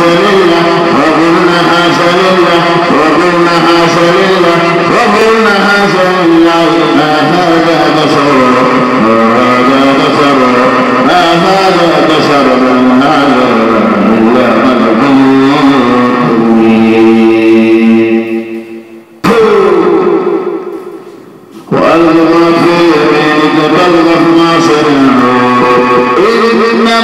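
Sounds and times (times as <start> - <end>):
person chanting: 0.0 - 27.0.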